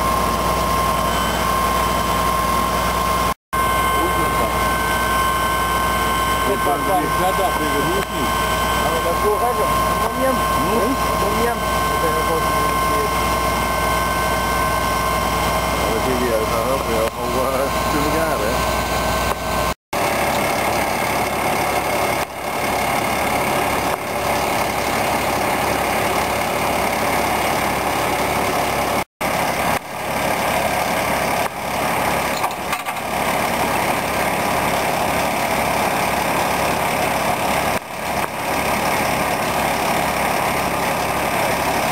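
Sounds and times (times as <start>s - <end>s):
fire engine motor running: 0.0s - 41.9s
steady high whine: 0.0s - 41.9s
people's voices: 6.4s - 13.2s, 15.8s - 18.6s.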